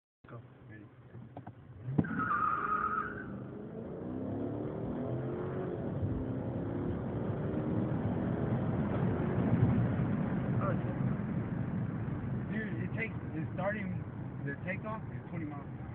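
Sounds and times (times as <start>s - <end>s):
car engine accelerating: 1.3s - 15.9s.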